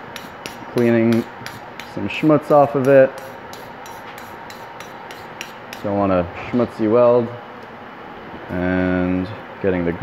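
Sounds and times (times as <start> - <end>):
wire brush scrubbing steel: 0.0 - 6.0.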